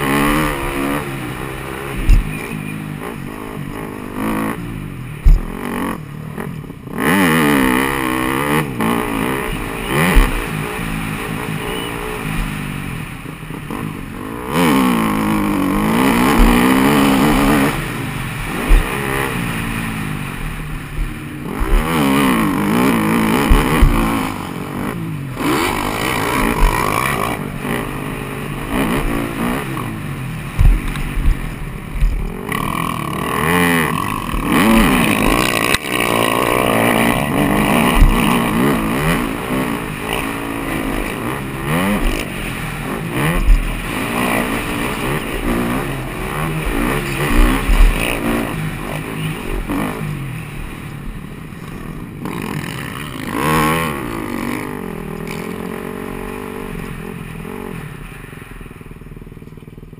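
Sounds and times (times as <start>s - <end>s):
motocross engine revving: 0.0s - 58.1s.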